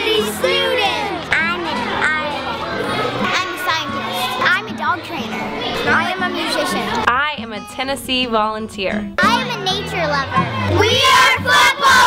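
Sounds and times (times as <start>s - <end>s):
children calling and talking: 0.0s - 12.0s
music with stepping bass: 7.0s - 12.0s.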